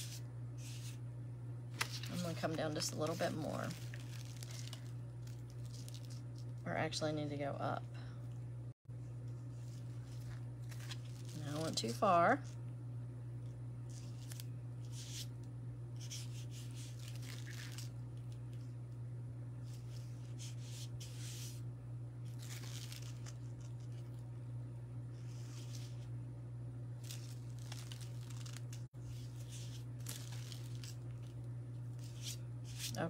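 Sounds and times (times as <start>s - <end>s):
steady low hum: 0.0s - 33.0s
vinyl sheet peeling and rustling: 1.7s - 6.6s, 9.1s - 12.6s, 13.8s - 15.4s, 16.0s - 18.7s, 22.2s - 24.3s, 25.1s - 26.1s, 27.0s - 33.0s.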